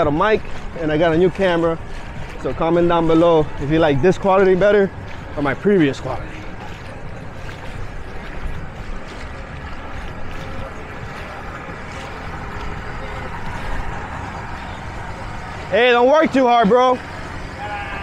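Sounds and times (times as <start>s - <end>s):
distant boat motor: 0.0s - 18.0s
moving water: 0.0s - 18.0s.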